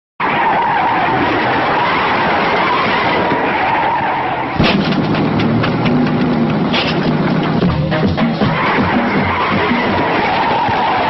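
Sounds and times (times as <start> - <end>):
rushing wind and road noise: 0.2 - 11.0
music with beat and bass line: 4.6 - 10.2.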